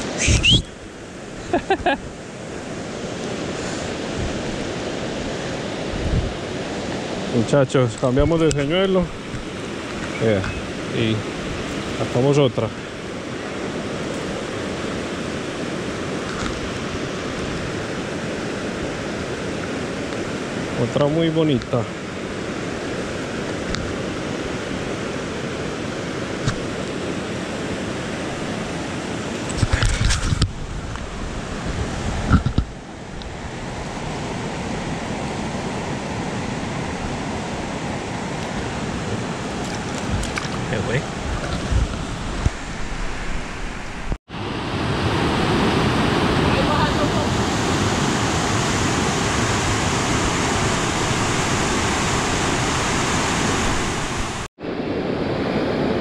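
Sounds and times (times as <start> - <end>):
river rapids rushing: 0.0 - 29.7, 31.1 - 56.0.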